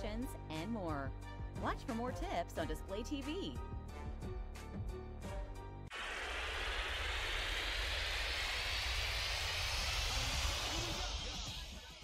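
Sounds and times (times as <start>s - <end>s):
rising whoosh: 5.9s - 12.0s.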